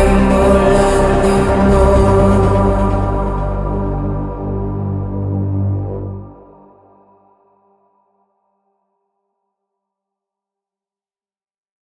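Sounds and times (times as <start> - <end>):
sustained synthesizer chord: 0.0 - 7.8.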